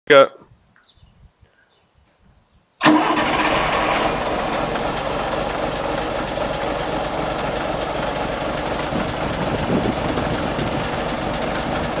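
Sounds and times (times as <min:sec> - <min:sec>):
diesel bus engine starting and idling: 0:02.8 - 0:12.0.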